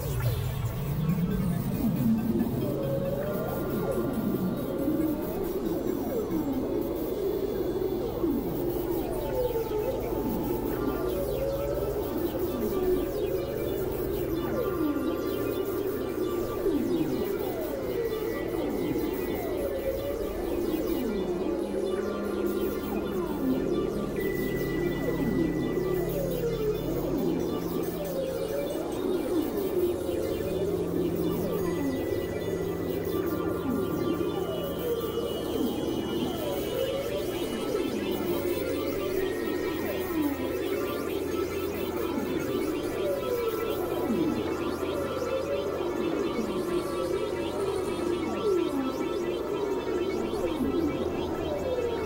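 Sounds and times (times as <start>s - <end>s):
low synthesizer drone: 0.0s - 52.0s
siren-like synthesizer glides: 0.0s - 52.0s.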